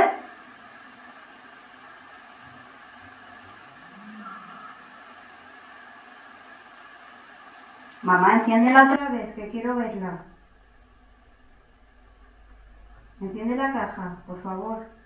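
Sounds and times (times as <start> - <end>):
low hiss: 0.0 - 15.0
faint voice-like sound: 3.8 - 4.9.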